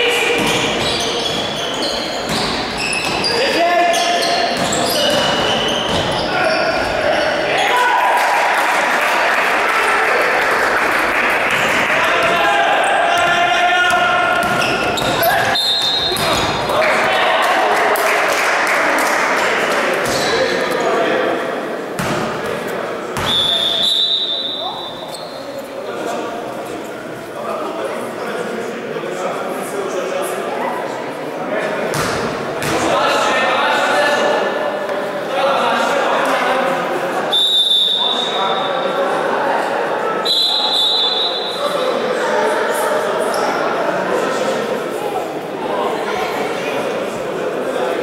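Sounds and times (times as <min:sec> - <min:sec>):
voices calling out in hall: 0:00.0 - 0:48.0
sneaker squeaks: 0:00.3 - 0:07.8, 0:14.3 - 0:16.7, 0:20.0 - 0:20.7, 0:23.2 - 0:25.7, 0:43.2 - 0:43.6
players shouting: 0:02.8 - 0:10.7, 0:11.4 - 0:18.2.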